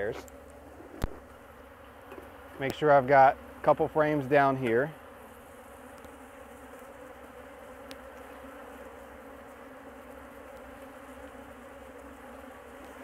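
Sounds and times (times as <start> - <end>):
bees buzzing: 0.0 - 13.0.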